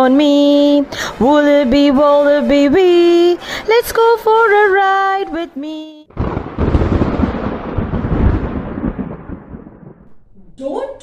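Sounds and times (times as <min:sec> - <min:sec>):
thunder-like rumble: 0:06.1 - 0:10.3.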